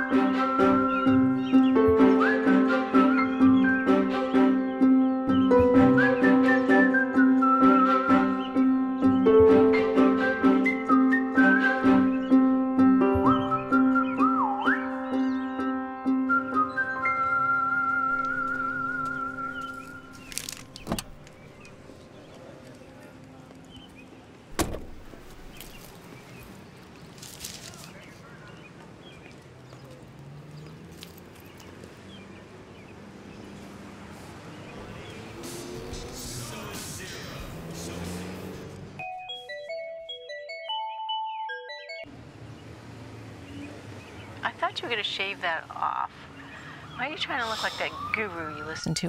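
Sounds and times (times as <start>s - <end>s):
outdoor background noise: 0.0s - 39.1s, 42.0s - 49.0s
car door unlatching thump: 20.7s - 21.3s, 24.5s - 25.6s
car door handle rattle: 20.8s - 21.4s, 24.5s - 25.4s
phone ringtone beeping melody: 39.0s - 42.1s.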